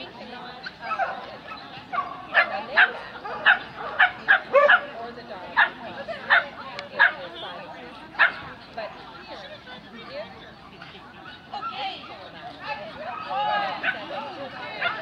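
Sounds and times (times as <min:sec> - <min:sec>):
dog barking: 0:01.9 - 0:04.9, 0:05.6 - 0:07.3, 0:08.2 - 0:08.4, 0:14.8 - 0:15.0.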